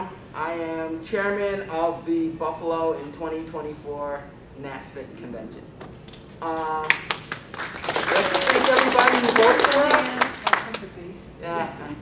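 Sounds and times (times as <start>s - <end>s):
audience clapping: 6.1s - 10.9s.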